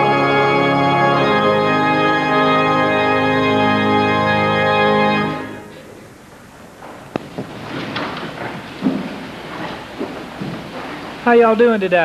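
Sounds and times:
microphone handling rustling: 6.8 - 11.2.

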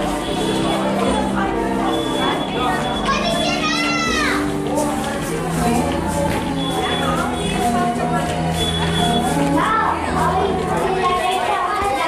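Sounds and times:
background music: 0.0 - 12.0
crowd noise: 0.0 - 12.0
child's high-pitched call: 2.8 - 4.4.

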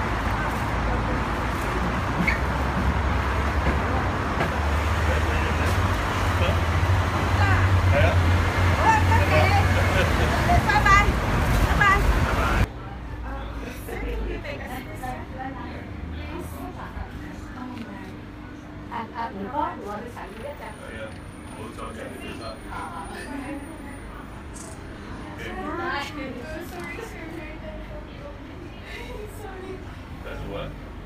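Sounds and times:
low rumble of street traffic: 0.0 - 31.0.

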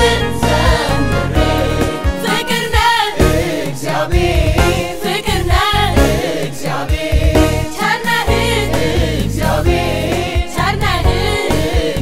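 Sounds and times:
backing band with strong bass: 0.0 - 12.0
choir singing with lead vocalist: 0.0 - 12.0.

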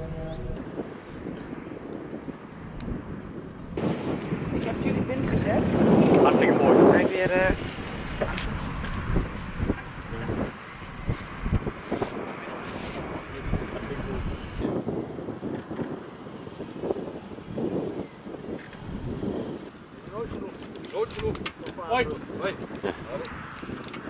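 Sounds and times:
indistinct voices: 0.0 - 0.8
wind buffeting microphone: 0.0 - 24.0.

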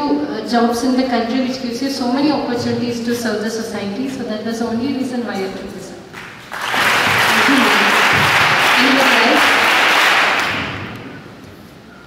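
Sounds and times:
children applauding: 6.1 - 11.1.

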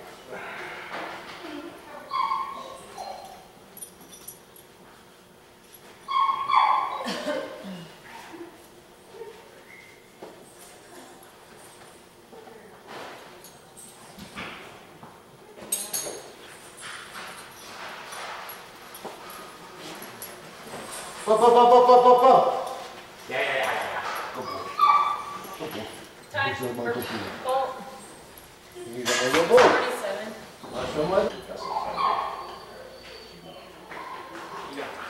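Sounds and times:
indoor hall hum: 0.0 - 17.6
dog whining and yelping: 2.1 - 3.5, 6.1 - 7.1, 24.3 - 25.6, 31.5 - 34.4.

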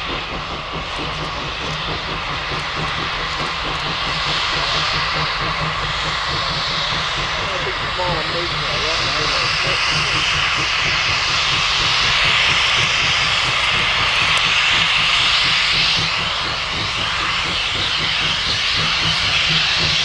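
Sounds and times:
steam hissing: 0.0 - 20.0
steam locomotive exhaust roar: 0.0 - 20.0.

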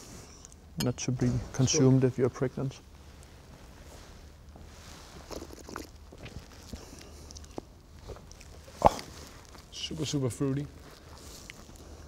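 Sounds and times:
men slurping and gulping beer: 5.2 - 9.6.

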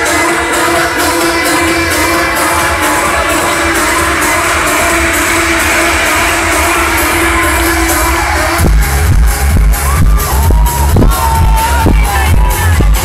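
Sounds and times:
electronic dance music: 0.0 - 13.0
heavy bass kick drum: 1.7 - 13.0.

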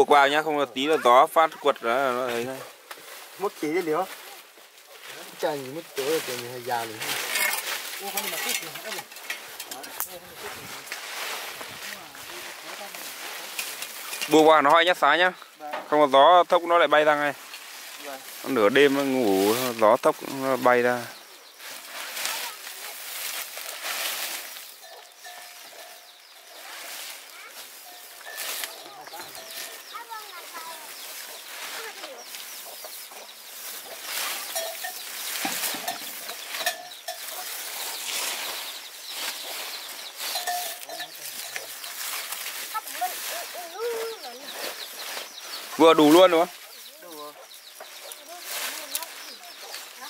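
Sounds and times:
plastic tarpaulin rustling: 2.0 - 15.7, 16.7 - 25.8, 26.5 - 32.4, 33.5 - 47.3, 48.1 - 50.0.

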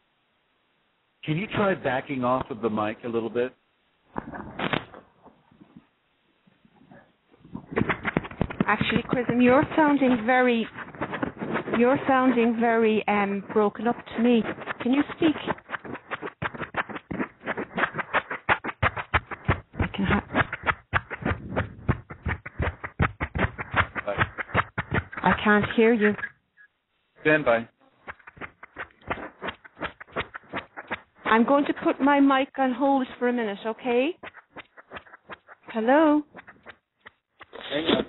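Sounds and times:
choppy voice call fragments: 8.6 - 10.9, 11.7 - 15.6, 25.2 - 26.3, 31.3 - 34.2.

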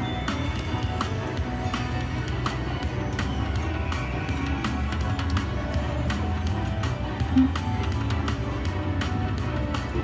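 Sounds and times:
slot machine bonus music: 7.2 - 7.8
short low tone: 7.4 - 7.6.

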